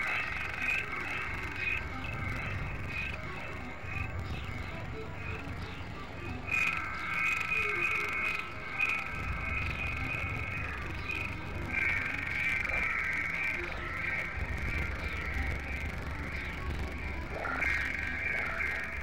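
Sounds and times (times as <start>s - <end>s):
high sustained electronic tones: 0.0s - 19.0s.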